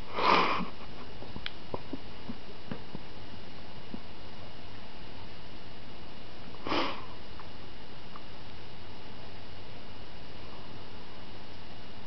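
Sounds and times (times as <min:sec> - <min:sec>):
short puff of breath: 0:06.6 - 0:07.1.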